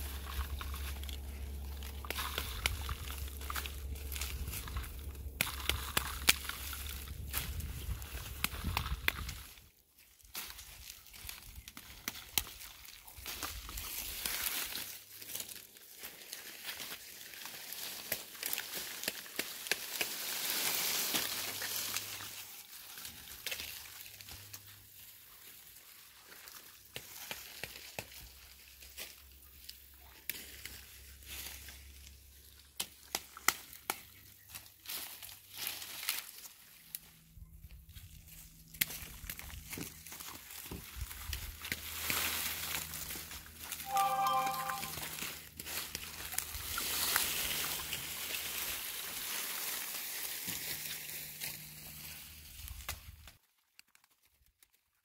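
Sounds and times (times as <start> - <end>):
dry plant stalks crackling: 0.0 - 55.0.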